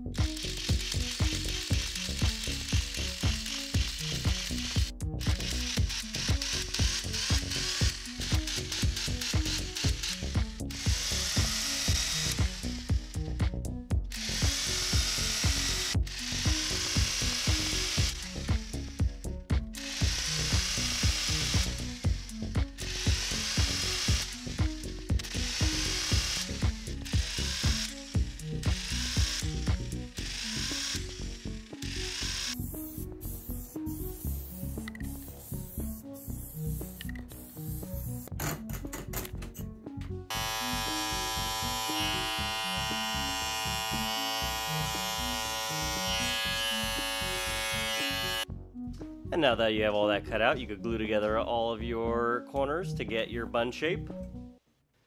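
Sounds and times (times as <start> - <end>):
music with steady beat: 0.0 - 49.4
electric tufting gun bursts: 0.2 - 13.1, 14.2 - 18.8, 19.8 - 22.2, 22.8 - 38.3, 40.3 - 48.4.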